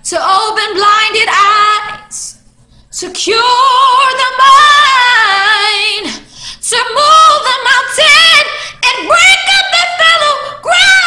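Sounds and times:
woman singing a cappella: 0.0 - 11.0.

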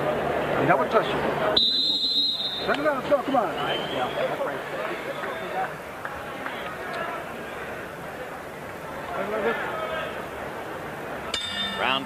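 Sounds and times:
men talking indistinctly: 2.6 - 5.8.

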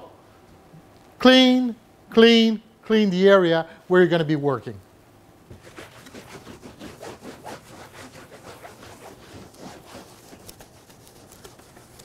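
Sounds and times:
cloth rag rubbing table: 5.5 - 12.0.

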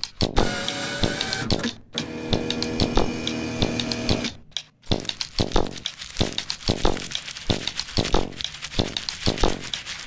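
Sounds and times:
fast clattering clicks: 3.8 - 10.0.

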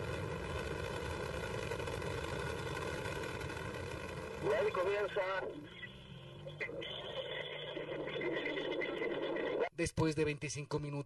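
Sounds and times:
rocket lifting off: 0.0 - 5.7
indistinct radio voice: 4.4 - 5.7.

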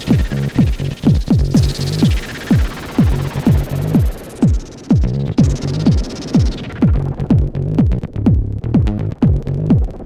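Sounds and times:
hissing filtered sweep: 0.0 - 7.8
deep kick drum: 0.0 - 10.0
synth bass line: 0.0 - 10.0.

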